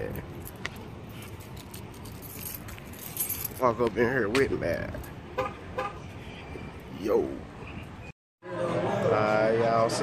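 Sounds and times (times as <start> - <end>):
light metallic jingling: 0.0 - 3.8.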